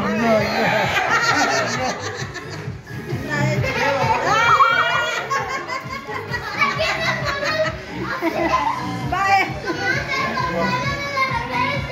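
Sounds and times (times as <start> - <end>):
background music: 0.0 - 11.9
children talking and shouting: 0.0 - 11.9.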